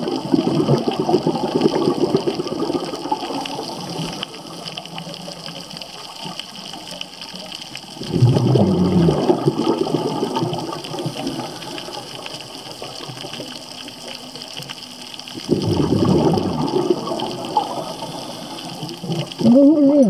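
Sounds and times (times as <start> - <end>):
steady hiss: 0.0 - 8.2, 9.2 - 15.6, 16.2 - 19.8
underwater exhaust bubbles: 0.0 - 20.0.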